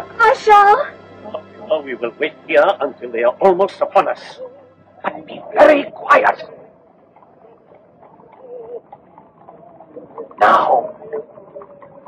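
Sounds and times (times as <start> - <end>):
bird cooing: 4.2 - 4.7, 7.2 - 12.0.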